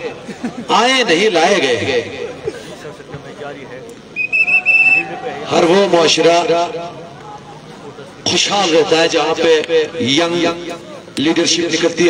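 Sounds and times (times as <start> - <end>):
referee's whistle blast: 4.2 - 5.2.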